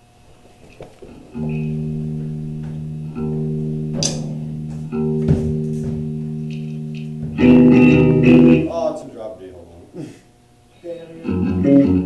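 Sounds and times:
guitar chords ringing: 1.3 - 9.0, 11.1 - 12.0.

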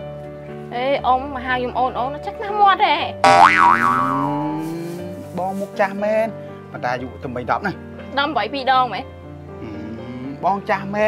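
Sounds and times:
background music: 0.0 - 11.0
comic boing sound effect: 3.2 - 4.6.

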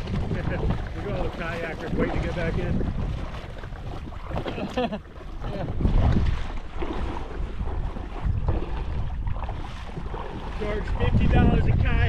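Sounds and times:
water lapping and splashing: 0.0 - 12.0
wind buffeting microphone: 0.0 - 12.0.

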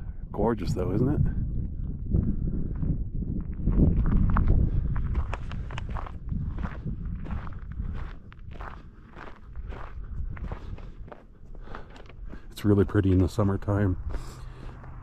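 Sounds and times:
low rumble: 0.0 - 15.0
footsteps on snow: 3.7 - 15.0.

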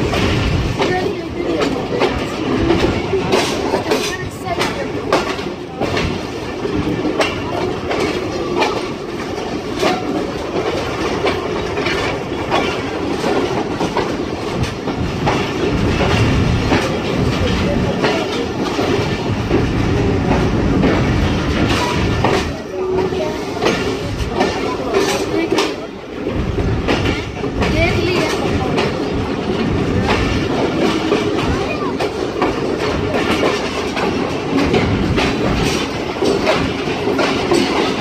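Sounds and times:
train rumbling: 0.0 - 38.0
wheels clicking over rails: 0.0 - 38.0.

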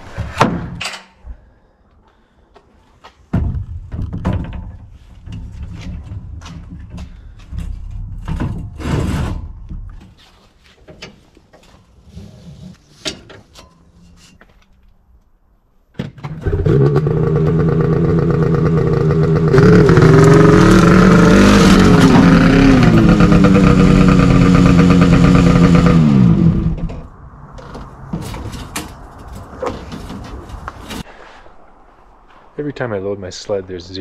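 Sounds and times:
clunks and knocks: 3.3 - 10.2, 26.7 - 31.0
snowmobile engine revving: 16.4 - 26.8.

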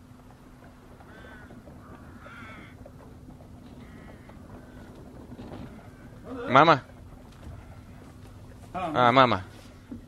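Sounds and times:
crows cawing: 0.8 - 9.5.

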